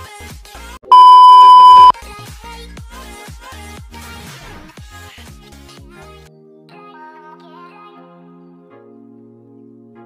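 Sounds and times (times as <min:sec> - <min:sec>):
high test tone beep: 0:00.9 - 0:01.9.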